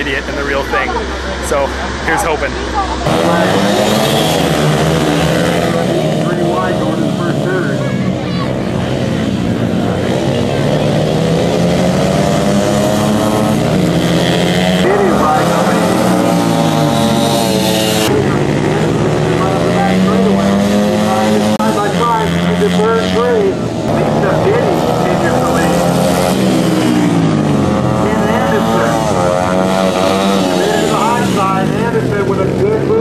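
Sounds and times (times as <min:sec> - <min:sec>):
dirt bike engines revving: 0:00.0 - 0:33.0.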